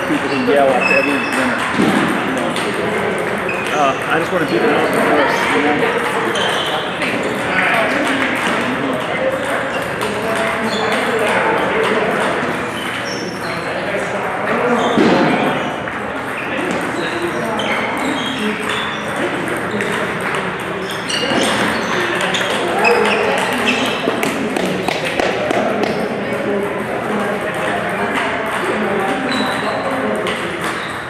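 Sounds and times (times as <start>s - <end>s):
voices talking: 0.0s - 31.0s
table tennis balls ticking: 6.3s - 13.6s, 15.8s - 31.0s.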